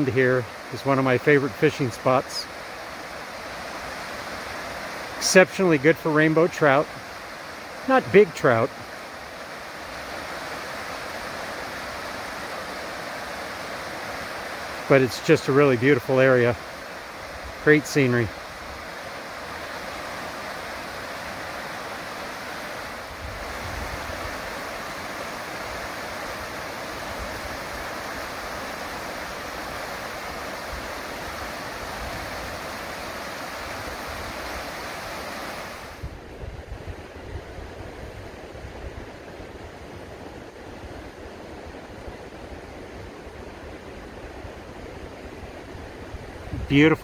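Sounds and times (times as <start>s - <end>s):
river rapids rushing: 0.0s - 36.4s
wind buffeting microphone: 35.9s - 39.8s, 41.8s - 47.0s.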